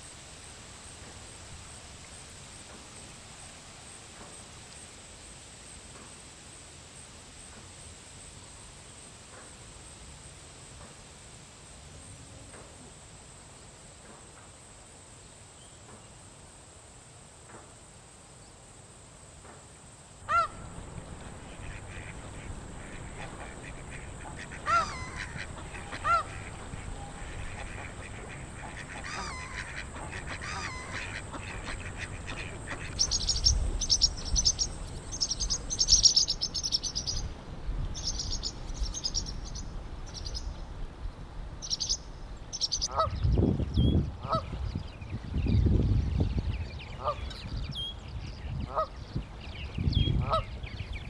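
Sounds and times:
geese honking: 0:20.3 - 0:33.6
high bird chirping: 0:20.3 - 0:37.3
steady high whine: 0:20.4 - 0:35.8.

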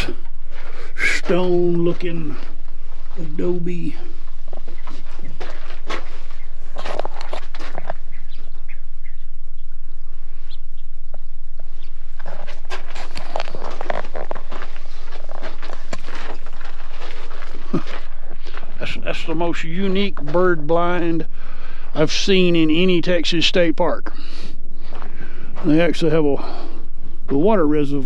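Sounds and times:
steady low hum: 0:00.0 - 0:28.0
birds chirping and calling: 0:02.7 - 0:09.8
clicks and rustles: 0:04.2 - 0:08.6, 0:12.2 - 0:18.8.

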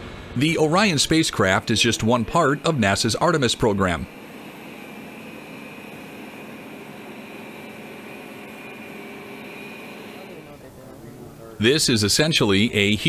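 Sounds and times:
machinery hiss with high whine: 0:00.0 - 0:13.0.

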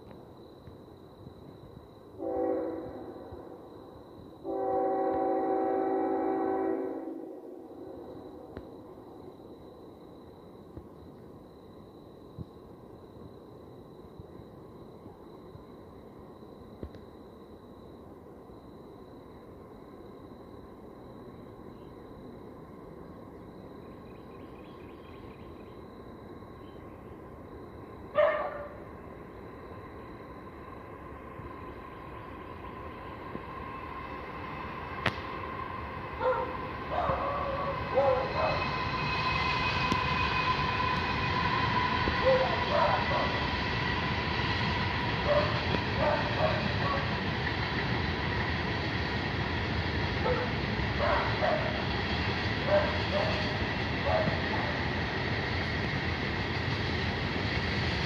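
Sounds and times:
freight train rolling on rails: 0:00.0 - 0:58.0
dog barking: 0:28.2 - 0:28.8, 0:36.2 - 0:38.6, 0:42.3 - 0:43.3, 0:45.3 - 0:47.1, 0:50.2 - 0:51.8, 0:52.7 - 0:53.4, 0:54.0 - 0:54.4.

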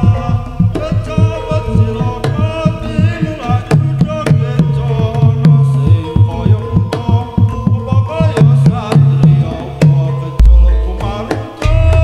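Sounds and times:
hand drum strokes: 0:00.0 - 0:12.0
ringing metallophones and gongs: 0:00.0 - 0:12.0.

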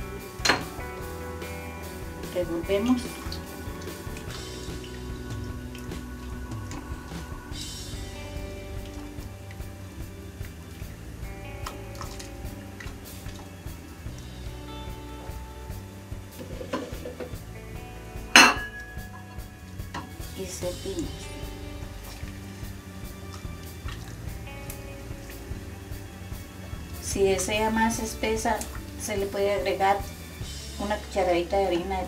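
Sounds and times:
sharp knock on pot: 0:18.4 - 0:18.8.

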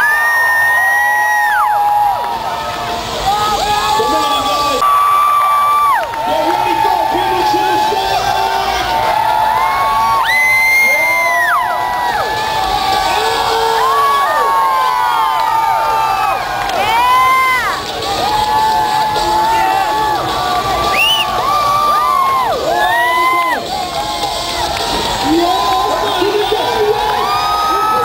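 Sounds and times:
crowd cheering and screaming: 0:00.0 - 0:28.0.

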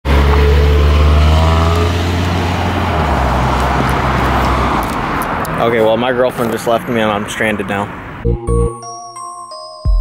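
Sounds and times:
car engine pulling away: 0:00.1 - 0:06.7.

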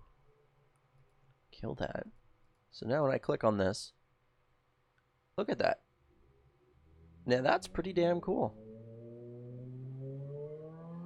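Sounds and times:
man speaking: 0:01.6 - 0:02.1, 0:05.4 - 0:05.8, 0:07.3 - 0:08.6.

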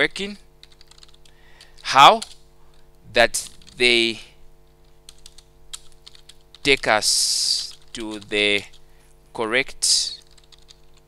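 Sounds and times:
computer keyboard keystrokes: 0:00.6 - 0:02.8, 0:03.4 - 0:03.8, 0:04.8 - 0:08.8, 0:10.1 - 0:11.0.

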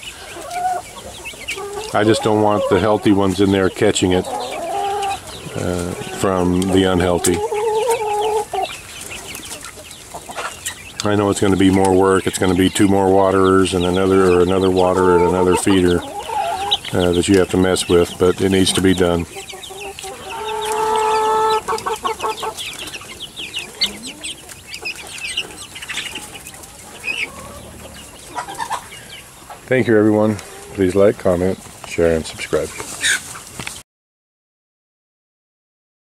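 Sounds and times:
chicks cheeping: 0:00.0 - 0:33.8.

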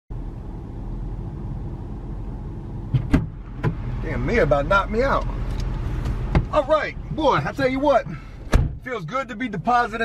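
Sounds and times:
vehicle engine idling: 0:00.1 - 0:10.0
sharp knocks: 0:02.9 - 0:03.8.

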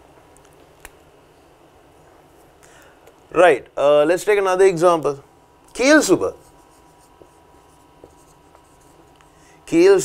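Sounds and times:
marker writing on whiteboard: 0:05.8 - 0:09.4.

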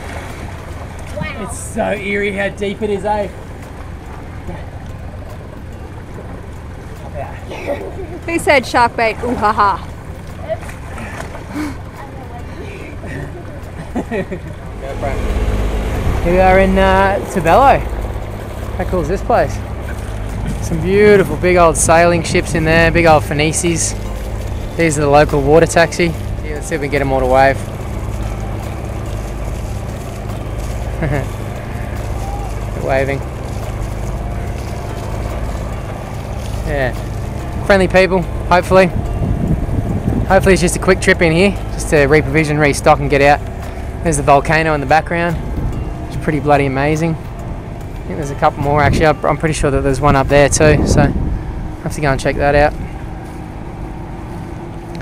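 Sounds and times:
boat engine idling: 0:00.0 - 0:55.0
laughter: 0:07.4 - 0:08.3, 0:13.0 - 0:14.6, 0:31.0 - 0:31.4.

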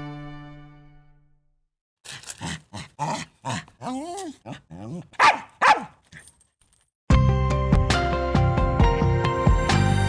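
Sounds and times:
small dog barking: 0:03.0 - 0:06.0.

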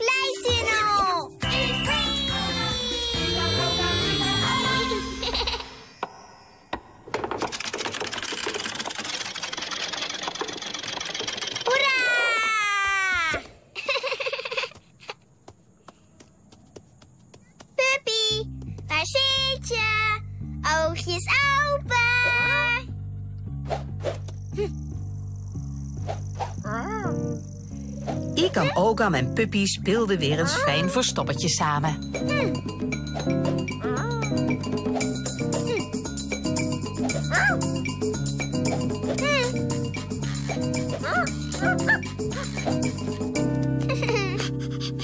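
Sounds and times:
bouncy cartoon tune: 0:00.2 - 0:05.8, 0:28.4 - 0:45.0.

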